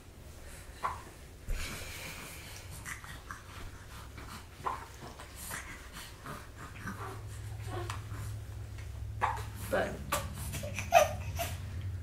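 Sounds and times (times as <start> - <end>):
babies snorting and breathing: 0.4 - 12.0.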